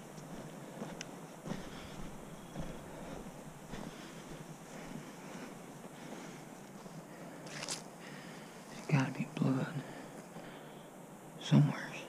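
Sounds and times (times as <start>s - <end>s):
footsteps through dry grass: 0.0s - 10.5s.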